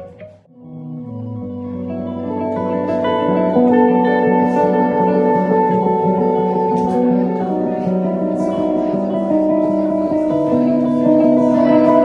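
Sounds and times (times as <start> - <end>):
two guitars playing held notes: 0.0 - 12.0.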